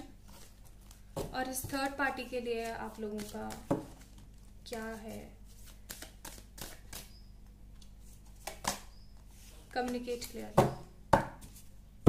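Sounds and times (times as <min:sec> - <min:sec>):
cards being shuffled: 0:02.6 - 0:07.2
crisp snaps of card edges: 0:07.8 - 0:10.4.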